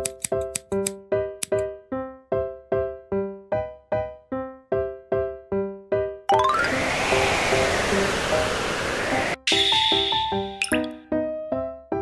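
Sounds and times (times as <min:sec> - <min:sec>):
plucked notes music: 0:06.3 - 0:07.0
quick rising sweep: 0:06.3 - 0:10.6
rising run of notes: 0:06.3 - 0:10.9
rushing noise: 0:06.4 - 0:10.6.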